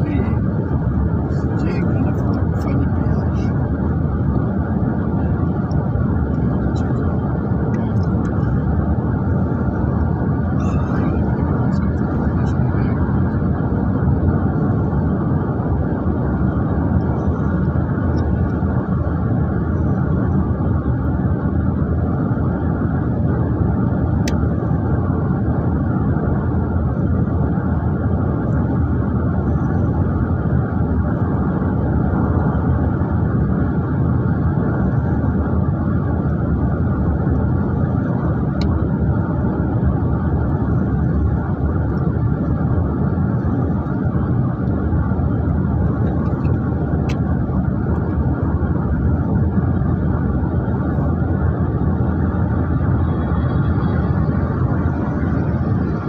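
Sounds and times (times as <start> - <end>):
road and engine rumble in car: 0.0 - 56.0.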